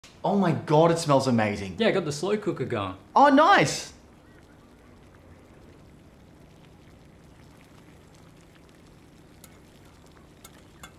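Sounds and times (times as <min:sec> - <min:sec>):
faint low hum: 0:00.1 - 0:10.9.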